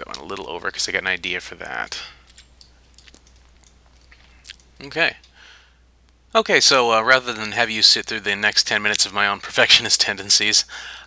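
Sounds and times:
low steady hum: 0.0s - 11.0s
keyboard clicks: 1.8s - 4.8s
computer mouse clicks: 2.3s - 4.7s.

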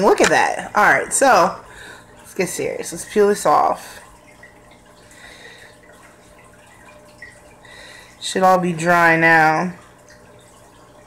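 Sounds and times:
water trickling: 0.0s - 11.0s.

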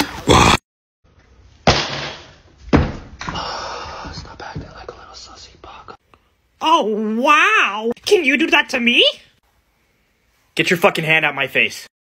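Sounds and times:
person whispering softly: 3.9s - 6.0s.

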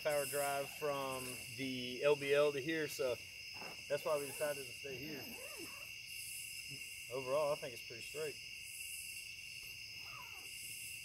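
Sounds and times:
night insects chirping: 0.0s - 11.0s.

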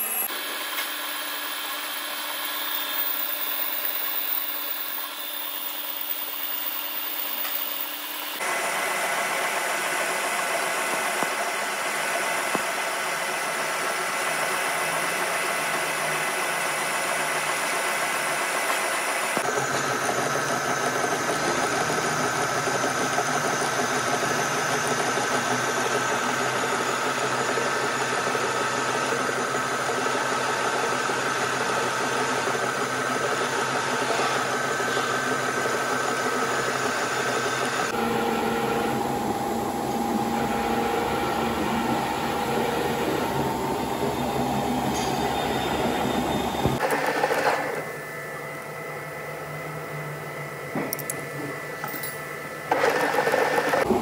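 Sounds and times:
lathe machine hum with whining tones: 0.0s - 54.0s.

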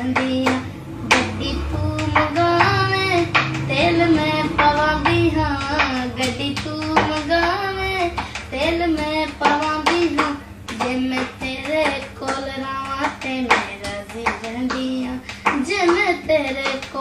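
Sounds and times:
boy singing unaccompanied: 0.0s - 17.0s
hand tapping on wall panel: 2.0s - 7.6s.

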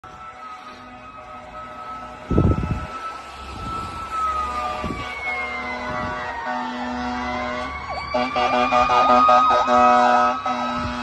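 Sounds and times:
sirens wailing: 0.0s - 11.0s
horn blasts: 4.5s - 11.0s.

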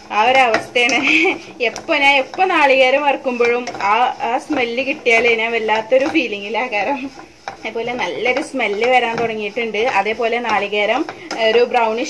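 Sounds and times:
woman talking: 0.0s - 12.0s
wooden spatula scraping a pan: 0.0s - 12.0s.

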